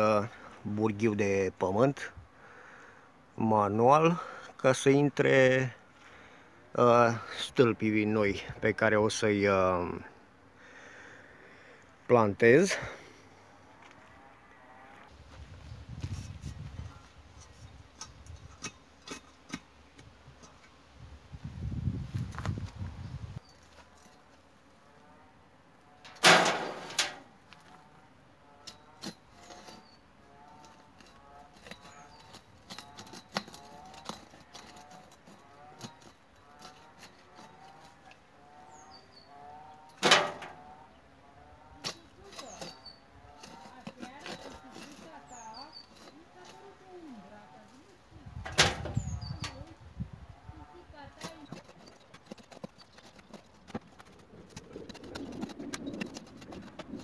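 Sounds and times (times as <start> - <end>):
auger scraping and grinding soil: 0.0 - 57.0.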